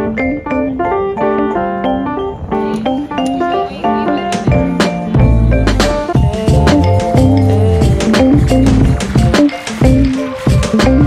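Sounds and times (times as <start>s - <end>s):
music with drum beat and bass: 0.0s - 11.0s.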